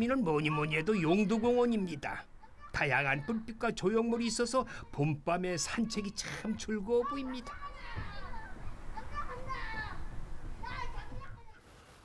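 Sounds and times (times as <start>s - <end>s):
faint children's voices chattering: 0.0s - 11.8s.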